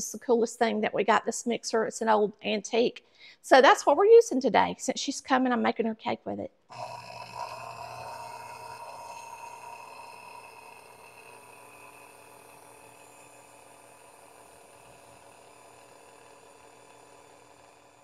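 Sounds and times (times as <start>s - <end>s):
stand mixer motor humming: 6.7s - 18.0s.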